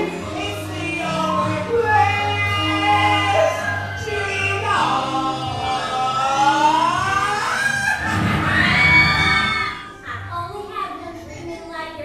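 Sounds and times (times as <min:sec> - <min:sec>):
person singing long rising notes: 0:00.0 - 0:08.2
quieter background music: 0:00.0 - 0:12.0.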